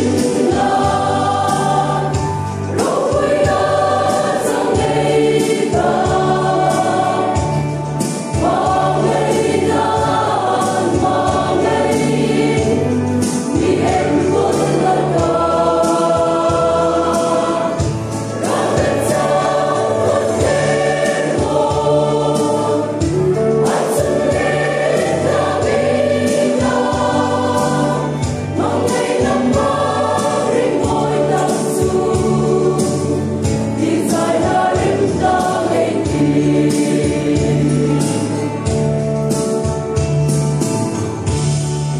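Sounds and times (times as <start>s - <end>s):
choir singing gospel song: 0.0s - 41.7s.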